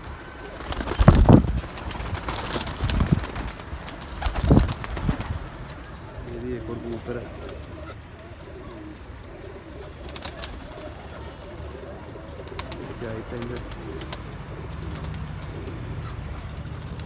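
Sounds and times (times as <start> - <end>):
pigeons cooing: 0.0 - 17.0.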